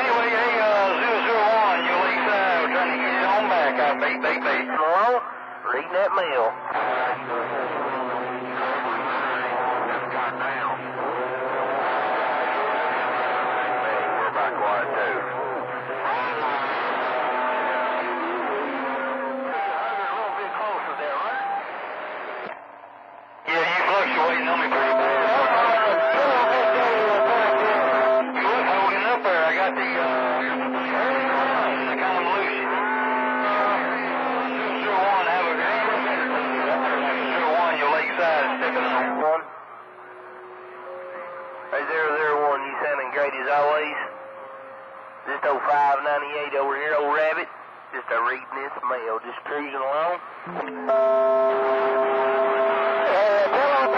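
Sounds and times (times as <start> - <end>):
garbled radio voices: 0.0 - 22.6, 23.5 - 39.6, 40.9 - 44.2, 45.2 - 50.9, 52.9 - 53.9
radio whistle tones: 17.8 - 22.7, 23.5 - 39.4.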